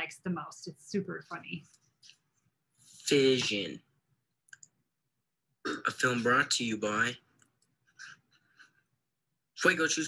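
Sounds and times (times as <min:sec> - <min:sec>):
person speaking: 0:02.9 - 0:03.8, 0:05.7 - 0:07.2.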